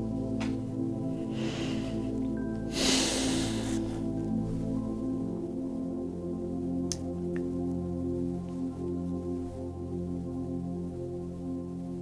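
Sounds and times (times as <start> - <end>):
slow ambient music: 0.0 - 12.0
breath through the nose: 1.2 - 4.2.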